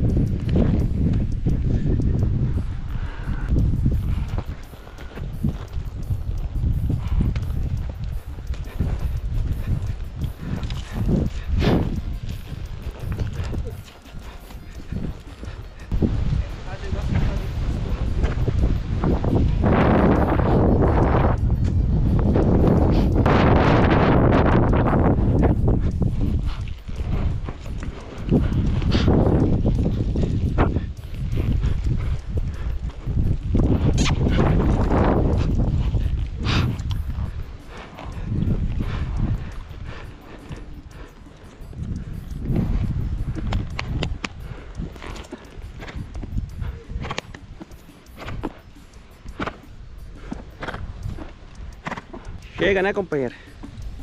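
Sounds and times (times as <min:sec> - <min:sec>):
wind buffeting microphone: 0:00.0 - 0:54.0
horse moving on soft sand: 0:02.2 - 0:54.0.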